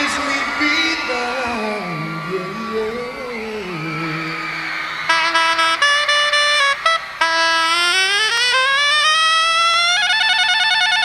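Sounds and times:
saxophone solo: 5.0s - 11.0s.

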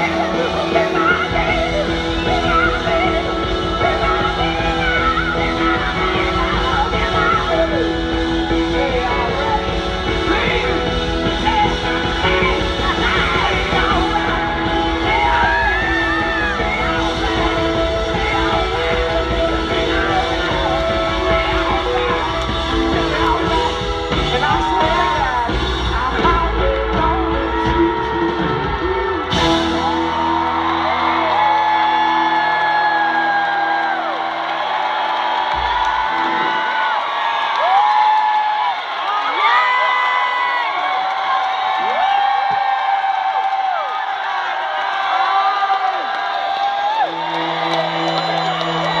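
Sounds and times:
live rock band playing: 0.0s - 37.4s, 47.0s - 49.0s
crowd cheering and whooping: 0.0s - 49.0s.

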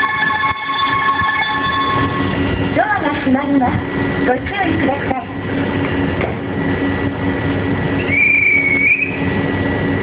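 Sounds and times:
electric train humming: 0.0s - 10.0s
high whine: 0.0s - 10.0s.

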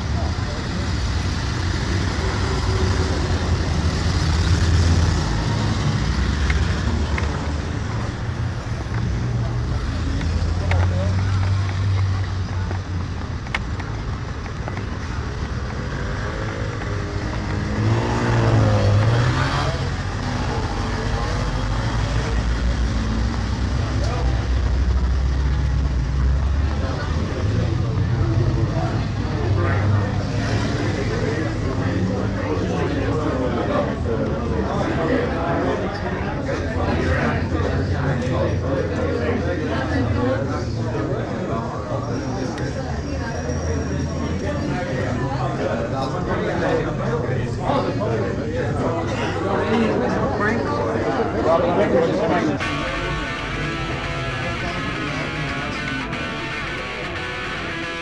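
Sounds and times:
people's voices: 0.0s - 58.0s
road traffic rumble: 0.0s - 58.0s.

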